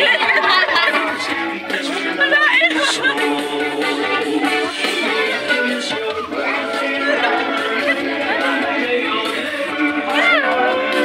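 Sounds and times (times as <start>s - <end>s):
background music with held notes: 0.0s - 11.0s
several voices talking: 0.0s - 11.0s.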